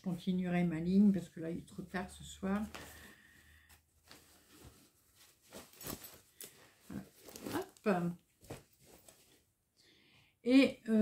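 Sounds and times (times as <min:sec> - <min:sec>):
fabric rustling: 0:00.1 - 0:09.6.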